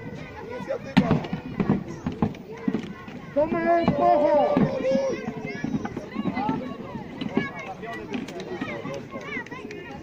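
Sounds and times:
people's voices: 0.0 - 10.0.

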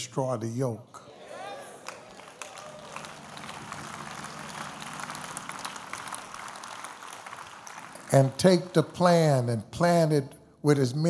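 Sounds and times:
congregation applauding: 1.4 - 9.6.

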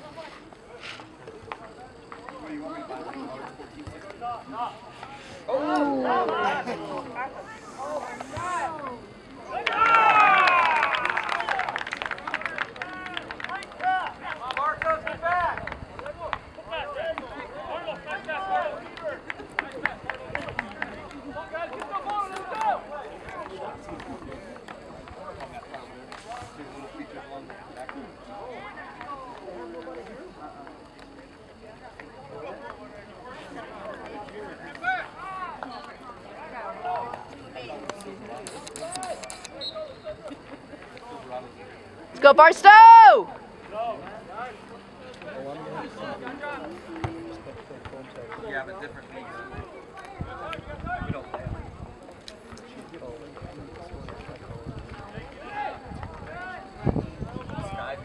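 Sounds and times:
players talking and calling out: 0.0 - 58.0
crowd cheering and shouting: 8.3 - 11.8, 42.1 - 43.8
sharp clicks: 37.9 - 39.6.

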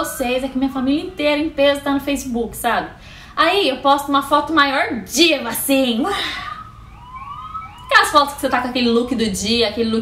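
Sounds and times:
people talking: 0.0 - 6.6, 7.9 - 10.0
rising whistle-like glides: 6.4 - 8.1.

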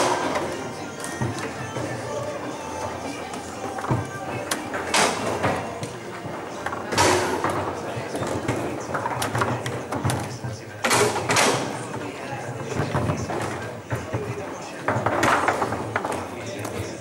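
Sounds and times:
chatter in a large hall: 0.0 - 17.0.

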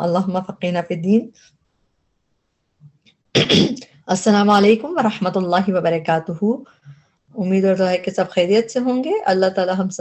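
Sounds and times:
person sneezing: 3.4 - 3.8.

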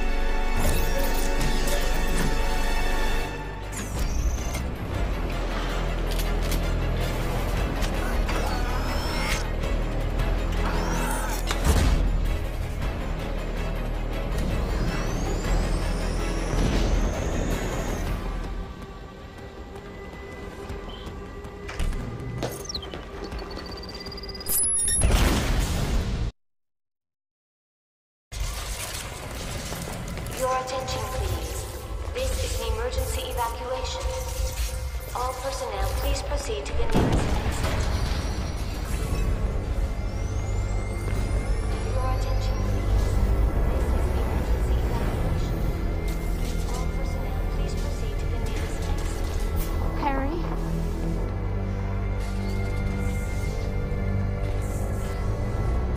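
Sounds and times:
film score: 0.0 - 26.3, 28.3 - 55.9.

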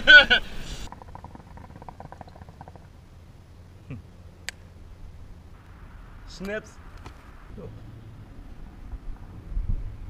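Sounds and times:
hookah water bubbling: 0.9 - 3.0.

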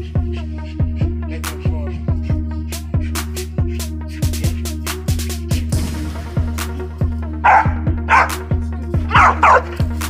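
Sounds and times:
music with pulsing bass beat: 0.0 - 10.0
dog barking: 7.4 - 8.4, 9.1 - 9.8.

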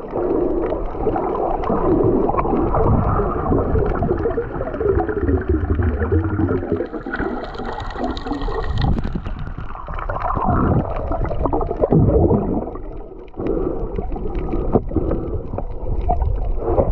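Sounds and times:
muffled water sloshing and gurgling: 0.0 - 16.9.

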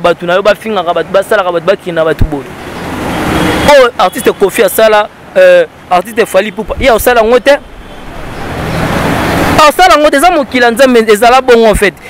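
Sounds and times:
man talking close to microphone: 0.0 - 2.5, 3.6 - 7.7, 9.5 - 12.0
road traffic noise: 0.0 - 12.0.

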